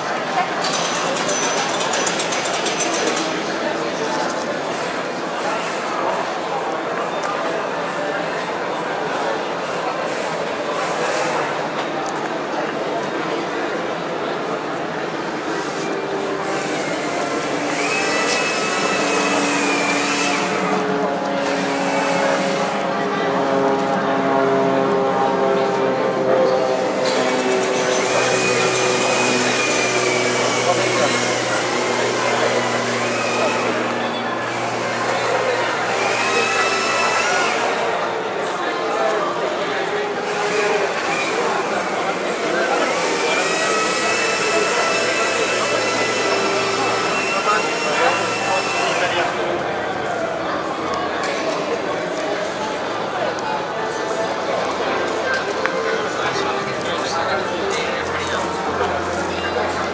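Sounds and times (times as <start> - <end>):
rice huller rattling and whirring: 25.8 - 38.0.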